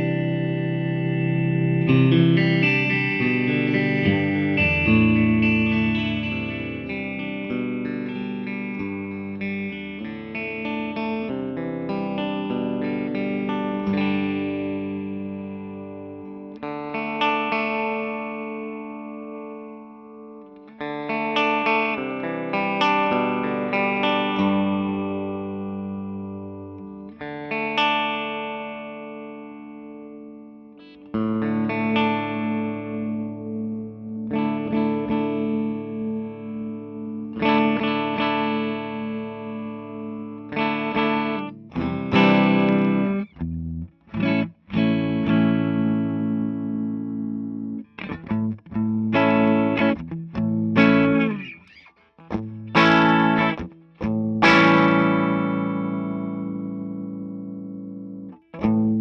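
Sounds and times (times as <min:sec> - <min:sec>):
electric guitar chords ringing: 0:00.0 - 0:59.0.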